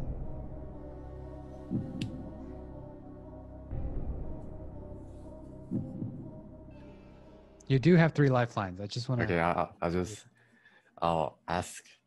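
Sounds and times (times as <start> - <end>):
tense droning music: 0.0 - 8.4
low heartbeat-like thump: 1.7 - 2.0, 5.7 - 6.4.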